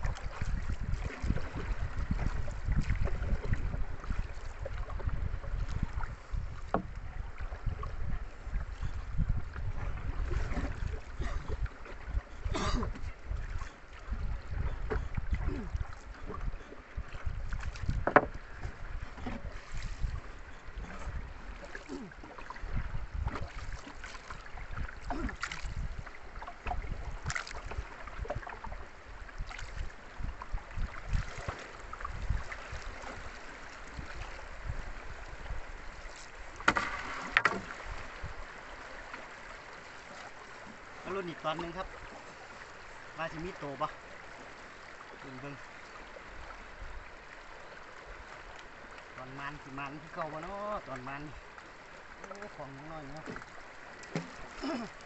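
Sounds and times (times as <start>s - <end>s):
paddle dips and splashes: 0.0s - 55.0s
sharp wooden knocks: 18.0s - 18.4s.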